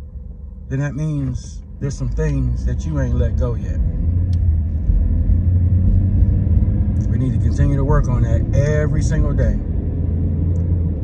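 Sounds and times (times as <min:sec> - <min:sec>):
car rumble from inside cabin: 0:00.0 - 0:11.0.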